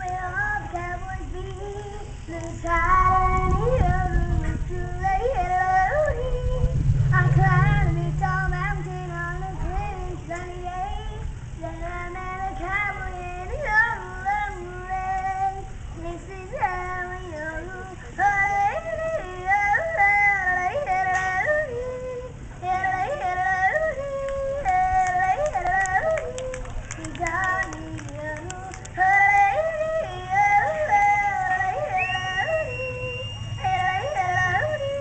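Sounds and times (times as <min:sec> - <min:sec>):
girl singing and yodeling: 0:00.0 - 0:35.0.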